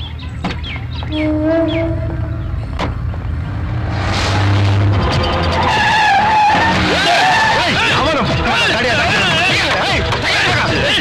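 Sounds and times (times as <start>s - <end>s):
van engine rumbling: 0.0s - 11.0s
wavering tyre squeals: 1.1s - 2.7s, 3.8s - 8.9s
film background music: 4.9s - 11.0s.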